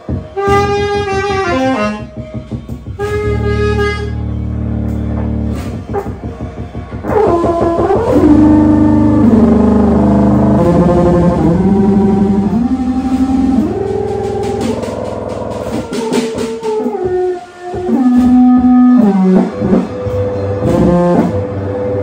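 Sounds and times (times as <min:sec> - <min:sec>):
drums: 0:00.0 - 0:22.0
soprano saxophone held tones: 0:07.1 - 0:21.6.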